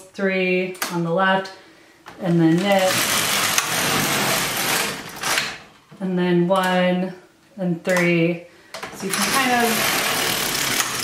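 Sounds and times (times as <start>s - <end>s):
knitting machine carriage clatter: 2.5s - 5.6s, 9.0s - 11.0s.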